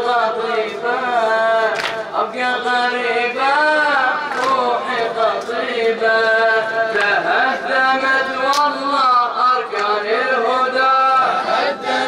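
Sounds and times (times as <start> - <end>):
man chanting a lament into a microphone: 0.0 - 11.8.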